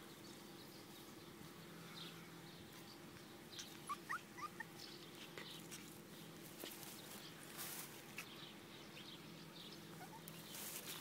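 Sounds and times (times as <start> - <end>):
puppy whimpering: 3.7 - 4.8, 10.0 - 10.3.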